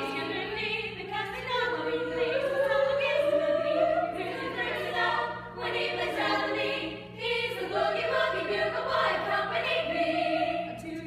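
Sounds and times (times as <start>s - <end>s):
women's choir singing: 0.0s - 11.0s.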